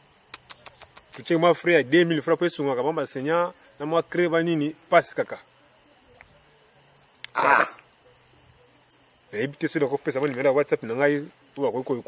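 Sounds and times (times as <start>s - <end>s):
insects trilling: 0.0s - 12.0s.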